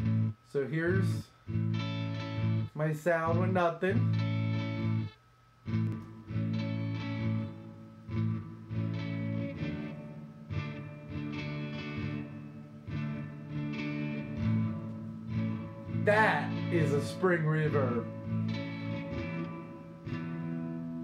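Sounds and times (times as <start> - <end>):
electric guitar chords with reverb: 0.0 - 2.7, 3.3 - 21.0.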